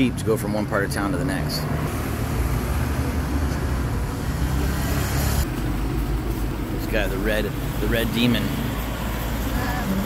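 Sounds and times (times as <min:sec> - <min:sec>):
traffic engine rumble and tyre noise: 0:00.0 - 0:10.0.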